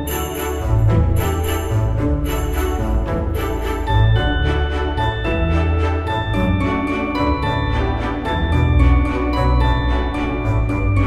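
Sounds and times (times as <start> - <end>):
bright high bell-like notes: 0.0 - 11.0
instrumental background music: 0.0 - 11.0
jingle bells shaken: 0.0 - 11.0.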